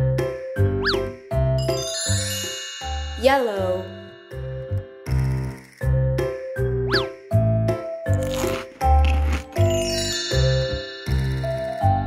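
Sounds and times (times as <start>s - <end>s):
chiming sparkle sound effect: 1.6s - 5.1s, 9.6s - 12.0s.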